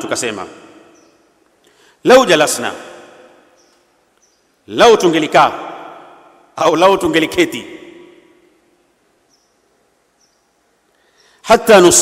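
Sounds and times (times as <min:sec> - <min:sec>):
man speaking over loudspeaker: 0:00.0 - 0:00.8, 0:02.0 - 0:03.1, 0:04.7 - 0:06.0, 0:06.6 - 0:07.9, 0:11.5 - 0:12.0
faint background noise: 0:00.0 - 0:12.0.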